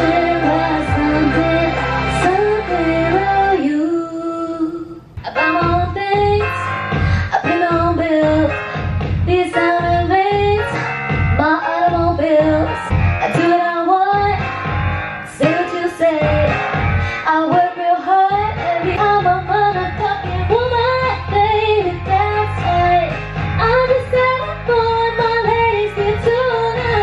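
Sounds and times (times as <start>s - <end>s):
woman singing into microphone: 0.0s - 14.6s, 15.2s - 27.0s
karaoke backing track: 0.0s - 27.0s.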